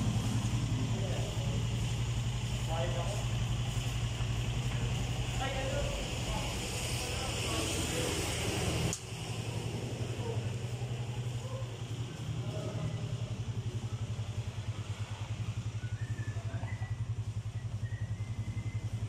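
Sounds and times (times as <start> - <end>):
scooter engine idling: 0.0 - 19.0.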